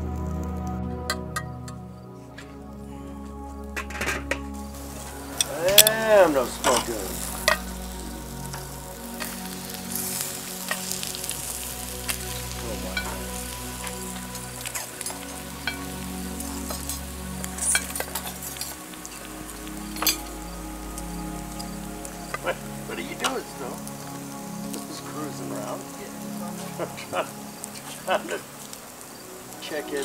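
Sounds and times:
meat sizzling on a grill: 4.5s - 30.0s.

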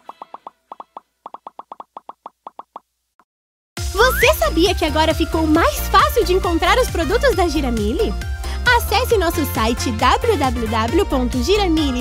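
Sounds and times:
cartoon pop sound effects: 0.0s - 2.8s.

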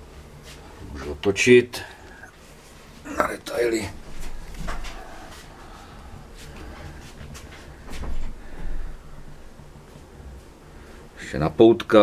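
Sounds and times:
light knocks and rustles: 6.4s - 8.4s.

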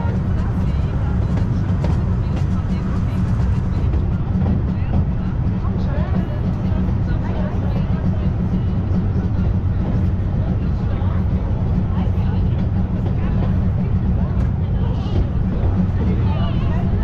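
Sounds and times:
faint passenger voices: 0.0s - 17.0s
railway carriage rumble: 0.0s - 17.0s.

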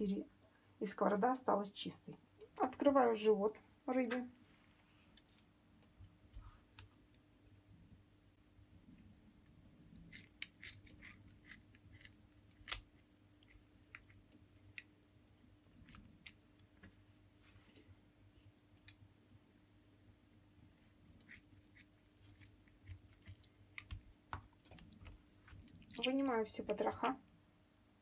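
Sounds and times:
scissors snipping: 10.0s - 14.2s.

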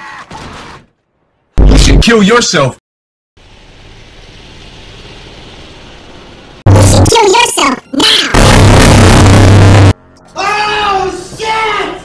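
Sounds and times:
vehicle rumble and hiss: 3.4s - 6.6s.

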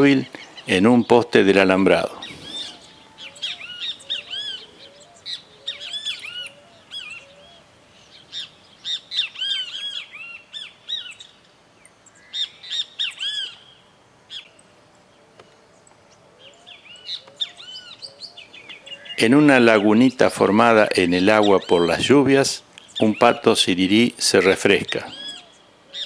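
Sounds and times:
birds chirping: 0.0s - 26.0s.

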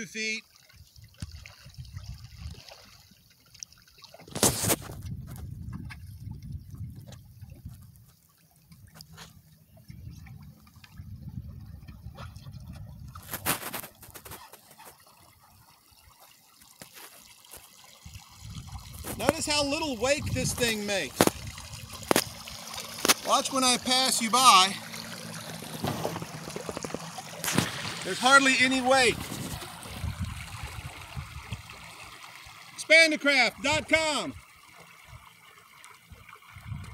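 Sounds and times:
small waves lapping: 0.0s - 36.7s
water dripping: 0.5s - 4.4s, 14.9s - 36.9s
low wind rumble: 4.9s - 8.0s, 9.7s - 13.2s, 29.1s - 31.8s.

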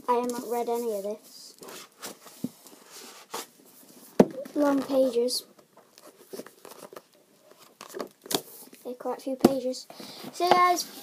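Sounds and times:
book pages rustling: 1.6s - 8.8s.

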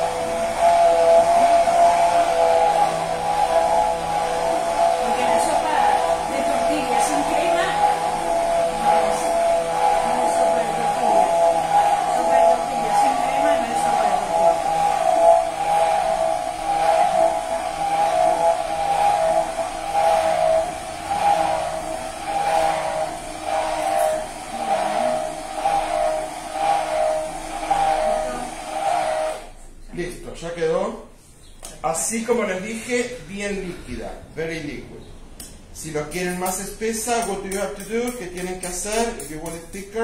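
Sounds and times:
immersion blender motor humming: 0.0s - 29.6s.

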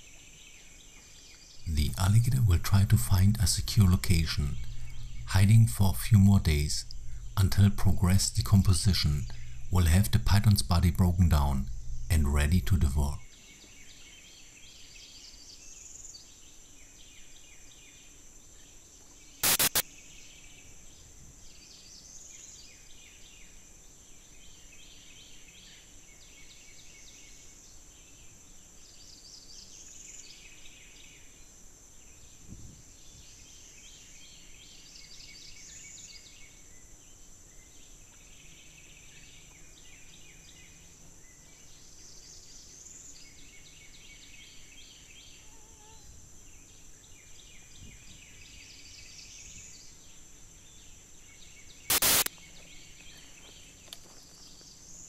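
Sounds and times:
high insect drone: 1.2s - 13.3s, 20.4s - 55.0s
chirping calls: 1.6s - 13.2s
sharp loud click: 19.4s - 19.8s, 51.9s - 52.3s.

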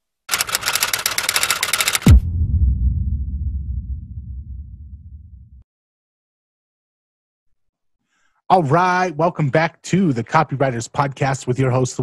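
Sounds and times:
typewriter keystrokes clattering: 0.3s - 2.1s.

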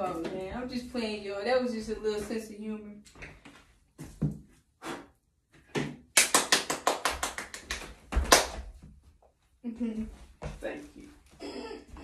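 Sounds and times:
hand clapping: 6.1s - 8.6s.

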